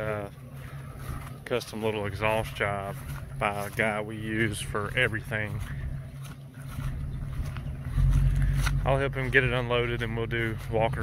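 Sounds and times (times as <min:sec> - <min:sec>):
truck engine low hum: 0:00.0 - 0:11.0.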